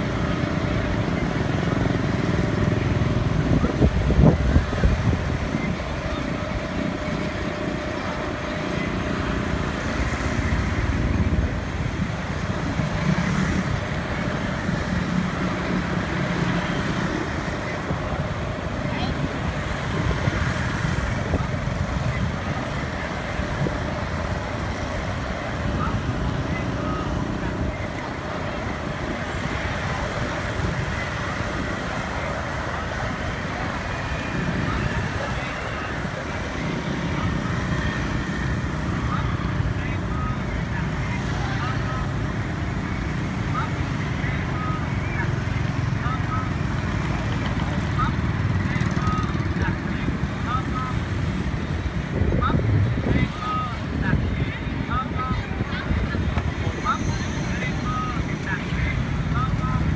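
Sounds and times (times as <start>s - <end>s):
indistinct voices: 0.0s - 59.9s
motorbikes and cars passing: 0.0s - 59.9s.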